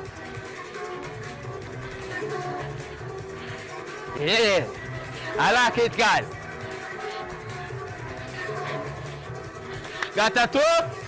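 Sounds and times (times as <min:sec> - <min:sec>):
workout music with steady beat: 0:00.0 - 0:11.0.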